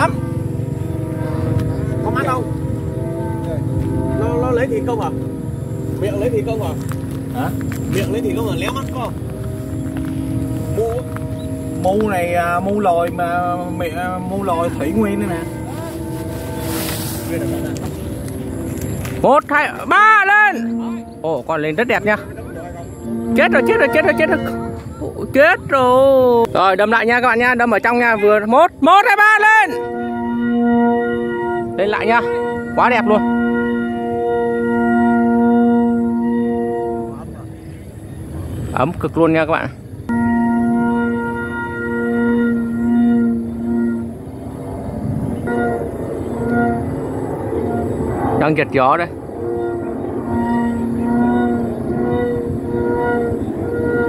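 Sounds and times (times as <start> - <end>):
kite flutes holding tones: 0.0 - 54.0
wind rumble on microphone: 0.0 - 54.0.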